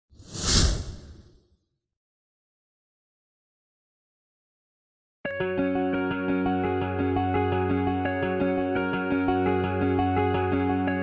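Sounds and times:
whoosh sound effect: 0.2s - 1.4s.

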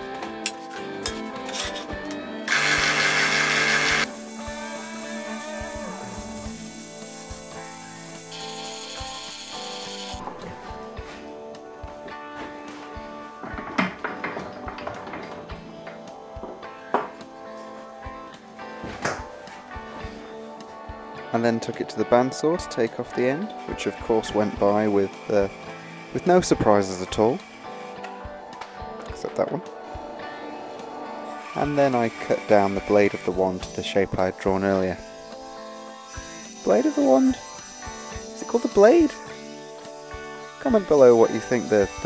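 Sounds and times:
background music: 0.0s - 42.0s
tool cutting turning wood: 2.5s - 6.6s
wood lathe running: 2.5s - 10.2s, 31.4s - 42.0s.

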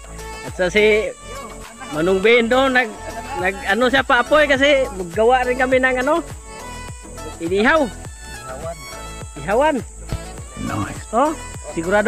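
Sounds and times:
high-pitched insect drone: 0.0s - 12.0s
drawn-out vocal calls: 9.9s - 11.6s.

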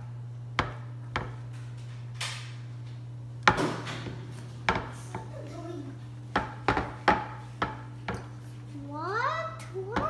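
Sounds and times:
steady low hum: 0.0s - 10.0s
frying pan knocking on countertop: 4.6s - 5.3s, 6.3s - 8.2s.

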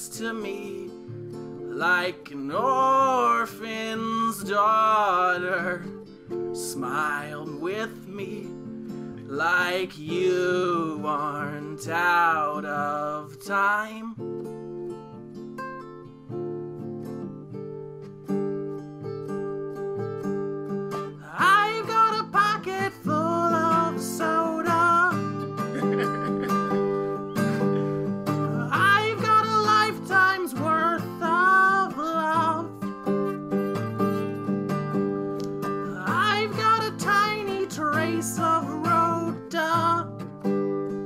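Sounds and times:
person singing: 0.0s - 0.9s, 1.7s - 5.9s, 9.3s - 14.2s, 21.1s - 34.4s, 35.4s - 40.2s
acoustic guitar: 0.0s - 41.0s.

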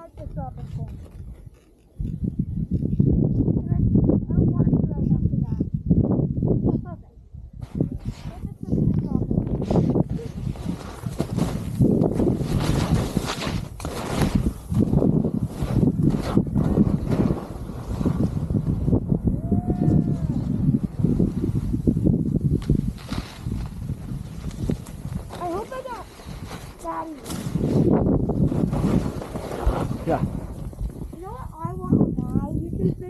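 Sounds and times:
wind rumble on microphone: 0.0s - 33.0s
skis scraping over snow: 9.6s - 18.9s, 22.6s - 31.4s.

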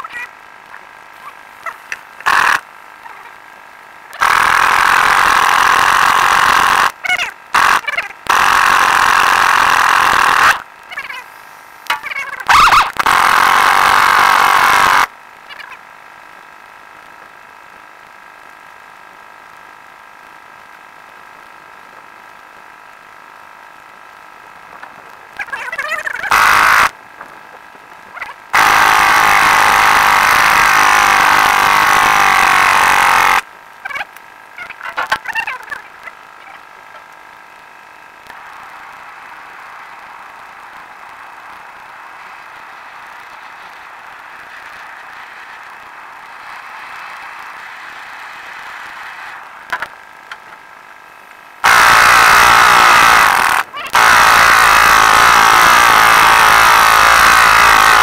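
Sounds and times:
pneumatic impact wrench: 2.2s - 2.6s, 4.2s - 6.9s, 7.6s - 10.6s, 12.5s - 15.1s, 28.6s - 33.4s, 51.6s - 58.0s.

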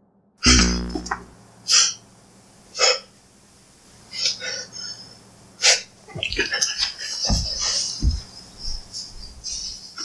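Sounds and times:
breathy hiccup-like vocal sound: 0.4s - 1.3s.

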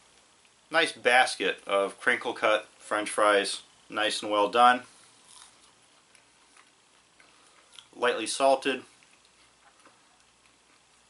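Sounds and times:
chewing french fry: 5.2s - 8.0s, 8.8s - 11.0s.

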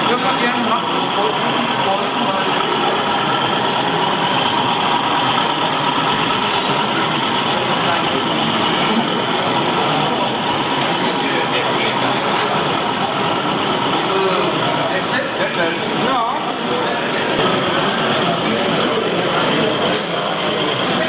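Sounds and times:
babble of many voices: 0.0s - 21.0s.

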